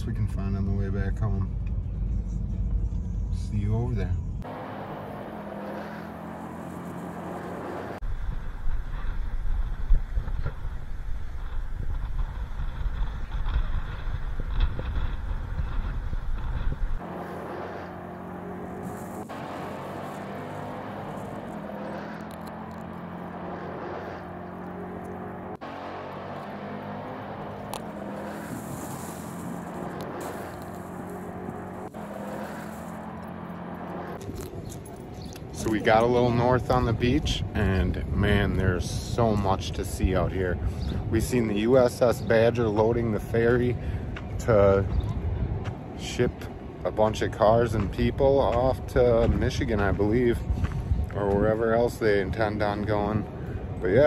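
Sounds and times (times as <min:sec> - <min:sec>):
car road and engine noise: 0:00.0 - 0:54.0
wind rumble on microphone: 0:08.0 - 0:17.0, 0:34.2 - 0:54.0.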